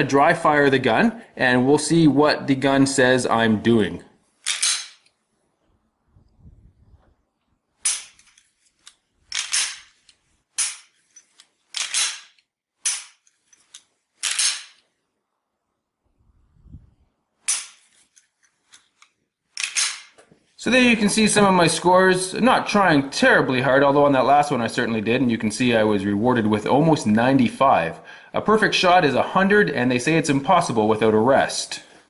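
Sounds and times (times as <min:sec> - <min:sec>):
pistol trigger snaps and clacks: 0:07.8 - 0:09.9, 0:10.6 - 0:14.9, 0:18.7 - 0:20.2.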